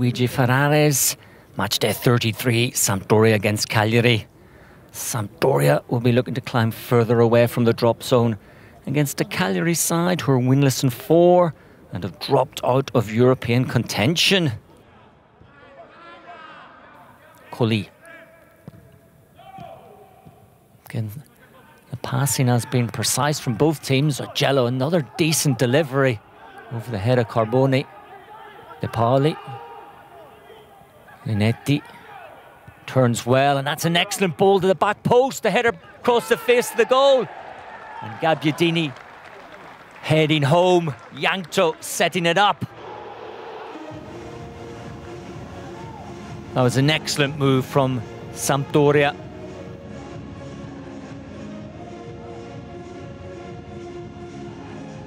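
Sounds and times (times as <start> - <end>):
low stadium ambience: 0.0 - 55.0
footballers shouting: 19.4 - 20.4, 22.3 - 49.4.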